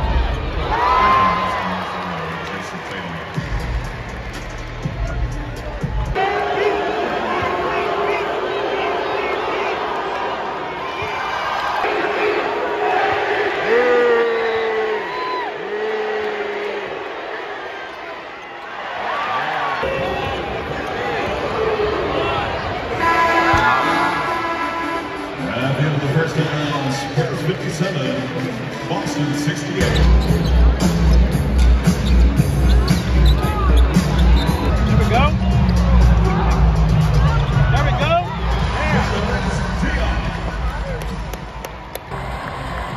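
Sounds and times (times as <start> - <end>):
arena crowd noise: 0.0 - 42.9.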